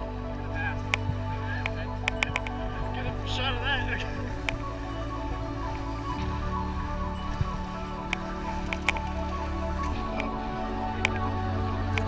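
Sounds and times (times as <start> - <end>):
music of held chords: 0.0 - 12.0.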